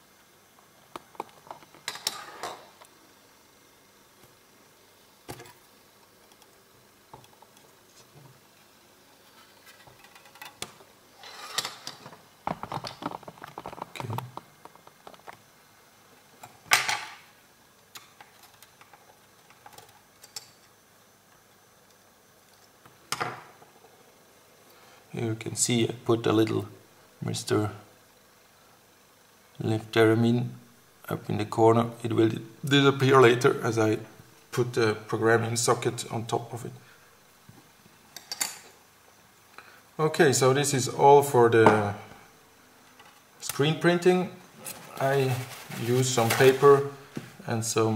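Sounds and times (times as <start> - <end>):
faint room noise: 0.0 - 47.9
scrape on tabletop: 11.2 - 11.7.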